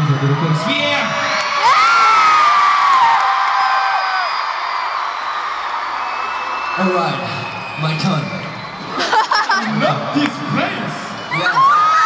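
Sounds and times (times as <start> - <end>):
crowd screaming and cheering: 0.0 - 12.0.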